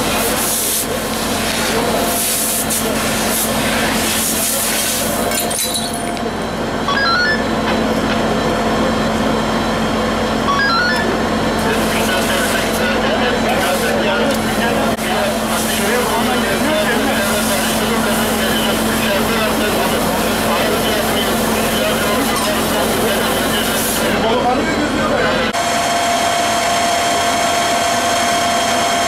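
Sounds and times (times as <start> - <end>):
fire hose spraying: 0.0 - 5.6, 11.6 - 24.2
voices talking: 2.7 - 25.6.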